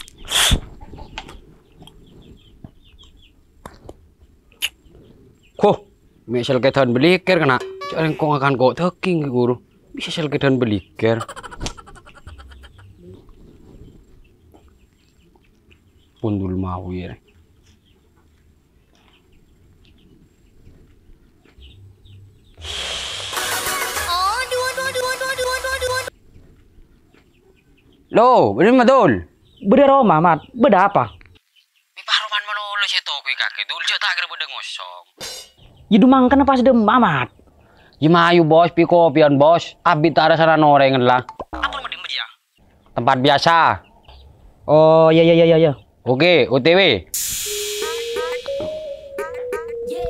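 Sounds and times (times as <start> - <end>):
chickens clucking and chirping: 0.0 - 8.4, 9.1 - 22.6, 23.4 - 31.8, 43.7 - 44.6
faint bird chirps: 4.2 - 18.2
bright hiss: 22.6 - 23.6, 47.1 - 48.9
steady pitched tones: 47.2 - 50.0.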